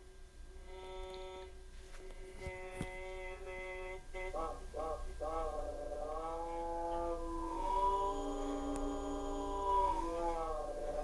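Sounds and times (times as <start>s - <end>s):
slowed droning voice: 0.6s - 11.0s.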